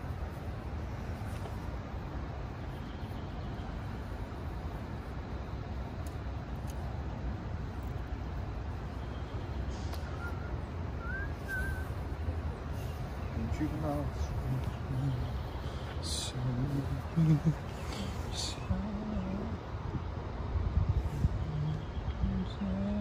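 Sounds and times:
low outdoor rumble: 0.0s - 23.0s.

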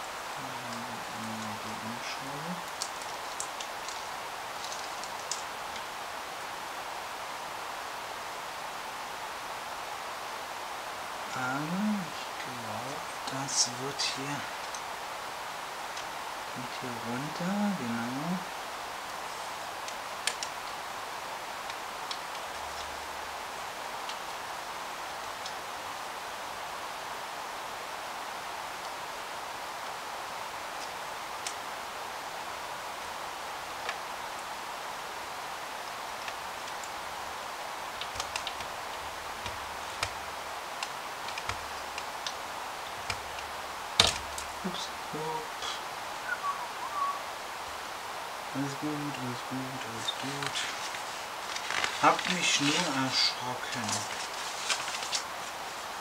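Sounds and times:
steady hiss: 0.0s - 56.0s.

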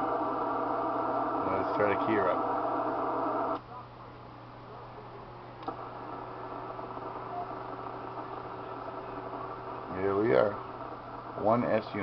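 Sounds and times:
low steady hum: 0.0s - 12.0s
radio static hiss: 0.0s - 12.0s.

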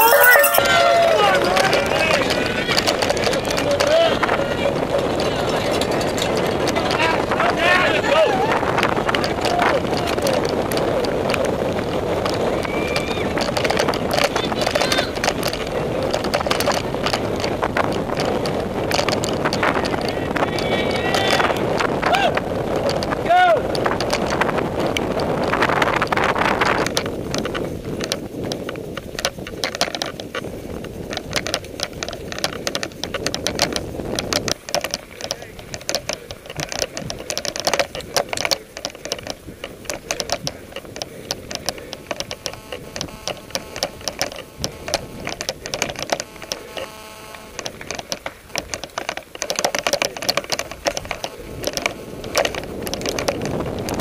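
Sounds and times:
spectators shouting: 0.0s - 2.3s
bike frame and chain rattling: 0.0s - 54.0s
wind and tyre rush: 0.0s - 54.0s.

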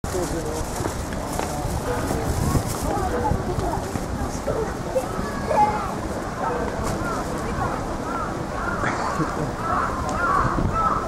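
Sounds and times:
pedestrians chattering: 0.0s - 11.0s
footsteps: 0.1s - 4.2s.

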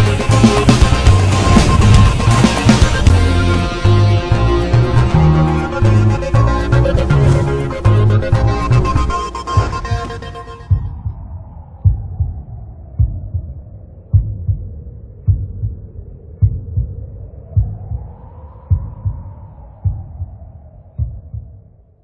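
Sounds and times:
low heartbeat-like thumps: 5.9s - 21.9s.

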